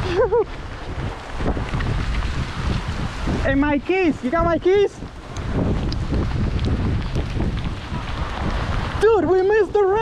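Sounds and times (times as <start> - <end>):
storm wind buffeting microphone: 0.0 - 10.0.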